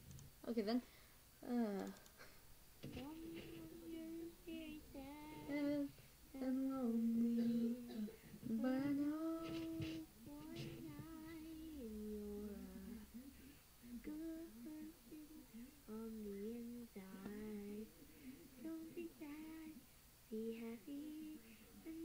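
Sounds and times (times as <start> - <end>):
child singing slow melody: 2.9 - 22.0.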